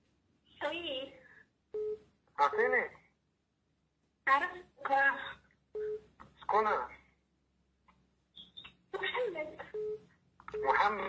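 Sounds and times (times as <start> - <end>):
telephone tone beep: 1.8 - 2.0, 5.8 - 6.1, 9.8 - 11.0.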